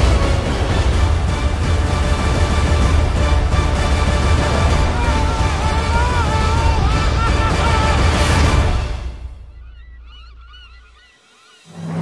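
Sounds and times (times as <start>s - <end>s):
flock of birds calling: 9.4s - 11.8s.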